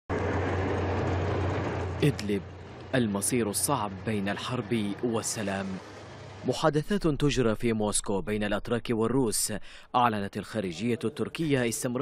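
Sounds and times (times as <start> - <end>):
tank engines and tracks rumbling: 0.1 - 7.8.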